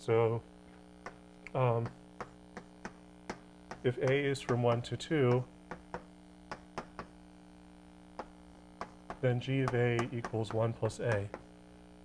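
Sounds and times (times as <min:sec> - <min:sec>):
electrical hum: 0:00.0 - 0:12.0
chalk tapping on blackboard: 0:01.0 - 0:07.2, 0:08.2 - 0:11.5.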